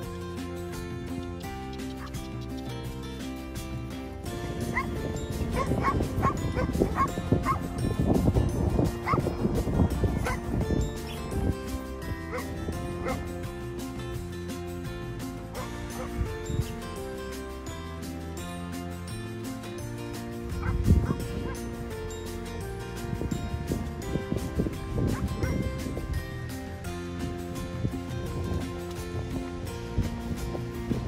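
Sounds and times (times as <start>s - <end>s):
background music: 0.0s - 31.0s
dog yipping: 1.9s - 2.7s, 4.7s - 7.7s, 9.0s - 9.2s, 10.2s - 10.4s, 12.3s - 13.3s, 15.6s - 16.2s, 20.6s - 21.6s, 25.1s - 25.6s.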